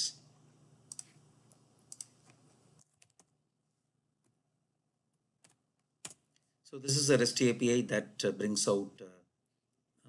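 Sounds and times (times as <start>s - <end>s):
mouse and keyboard clicks: 0.9s - 1.2s, 1.9s - 3.3s.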